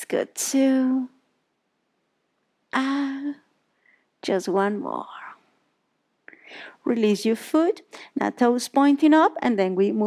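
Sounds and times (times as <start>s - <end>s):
woman speaking: 0.0s - 1.2s, 2.8s - 3.5s, 4.2s - 5.4s, 6.8s - 10.0s.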